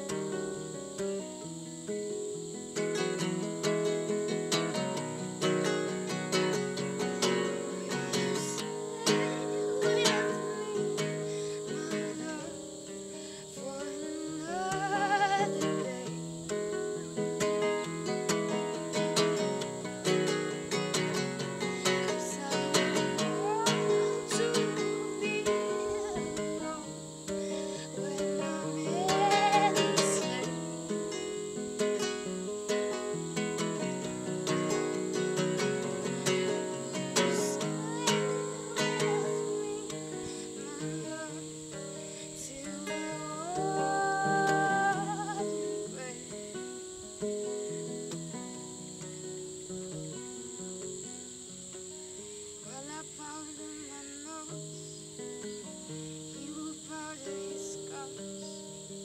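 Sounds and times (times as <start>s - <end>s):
crickets chirring: 0.0s - 59.0s
fingerpicked classical guitar: 0.0s - 59.0s.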